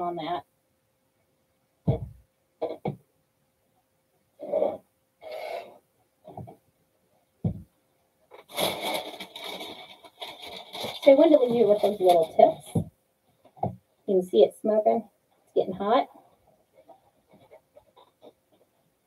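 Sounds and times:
mesh rustling and crinkling: 8.3s - 13.7s, 16.1s - 19.0s.

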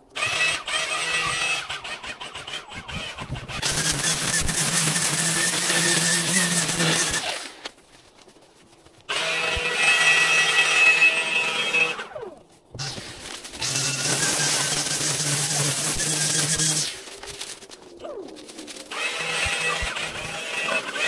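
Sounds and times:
string trimmer cutting grass: 0.0s - 7.7s, 9.1s - 21.0s.

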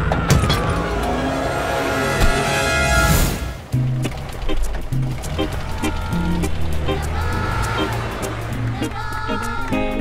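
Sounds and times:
cartoon soundtrack music: 0.0s - 10.0s.

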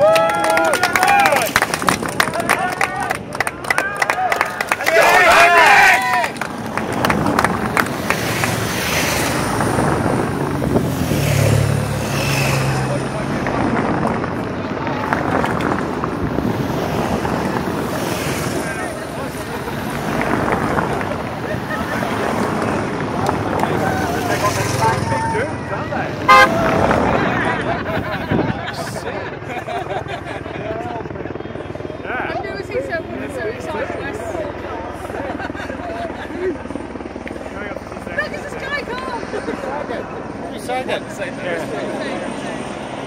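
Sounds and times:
spectators shouting: 3.7s - 6.4s, 23.5s - 27.0s
car passing: 4.6s - 28.2s
motorbike passing: 4.8s - 28.3s
vehicle horn toot: 26.3s - 26.7s.

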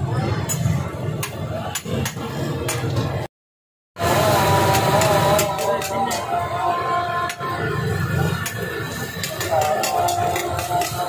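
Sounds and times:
street chatter and voices: 0.0s - 3.3s, 4.0s - 11.0s
metal spatula scraping a griddle: 8.0s - 11.0s.

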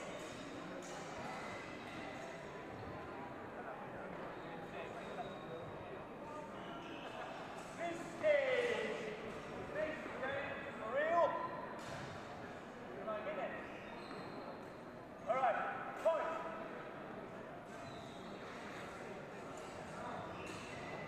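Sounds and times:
crowd murmur in large hall: 0.0s - 21.0s
shoes squeaking on floor: 4.4s - 5.8s, 13.7s - 14.9s, 17.7s - 18.8s.

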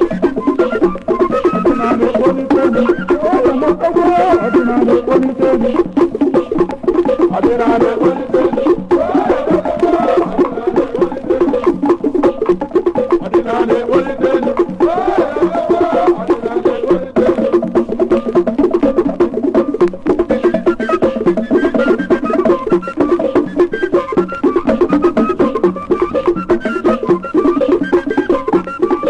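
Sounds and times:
pitched melody: 0.0s - 29.0s
wooden strikes and drums: 0.0s - 29.0s.

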